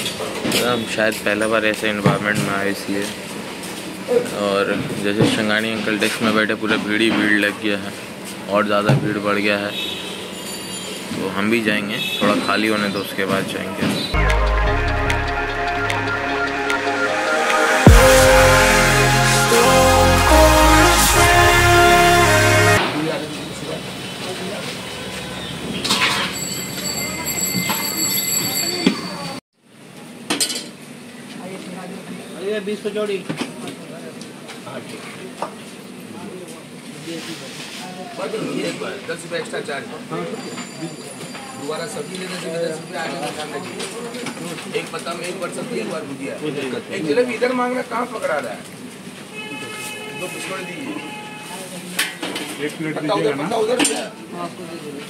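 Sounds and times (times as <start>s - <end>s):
street noise: 0.0s - 30.2s.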